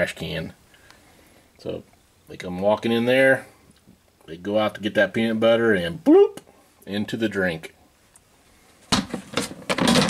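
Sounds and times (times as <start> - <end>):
plastic trash can lid scraping: 9.0 - 10.0.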